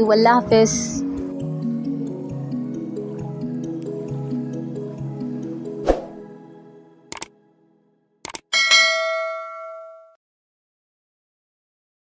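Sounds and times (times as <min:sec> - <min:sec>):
quick clicks: 0:07.1 - 0:07.3, 0:08.2 - 0:08.5
bright bell ding: 0:08.5 - 0:10.2.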